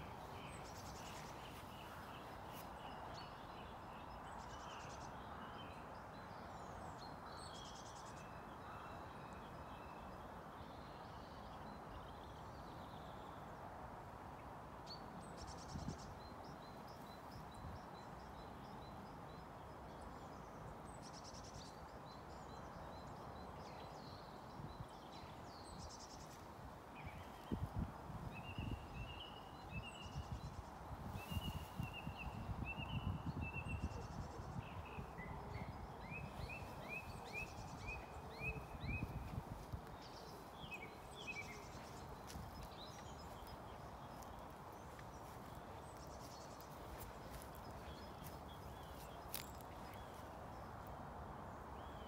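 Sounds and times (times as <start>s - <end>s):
small birds chirping: 28.4s - 50.7s.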